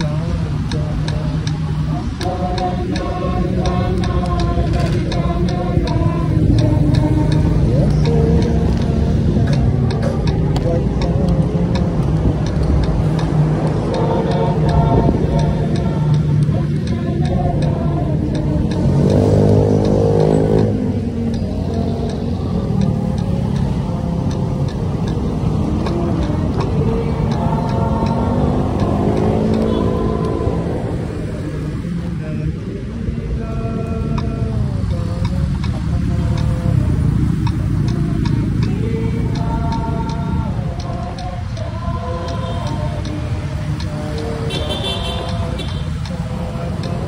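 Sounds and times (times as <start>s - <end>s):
motorcycle engines revving: 0.0s - 47.0s
road and wind noise: 0.0s - 47.0s.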